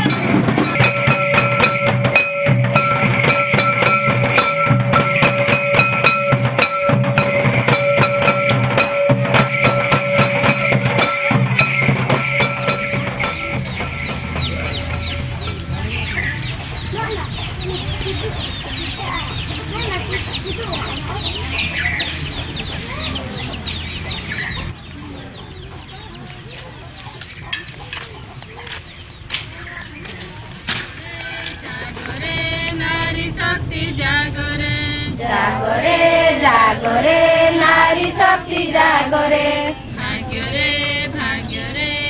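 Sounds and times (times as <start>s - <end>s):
held tone: 0.0s - 16.3s
barrel drum beaten: 0.0s - 16.8s
scattered knocks: 0.0s - 16.9s.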